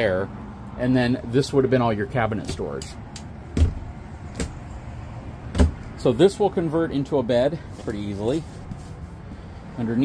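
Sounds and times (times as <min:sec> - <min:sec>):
cabinet door thud: 0:03.6 - 0:04.6, 0:05.5 - 0:05.8.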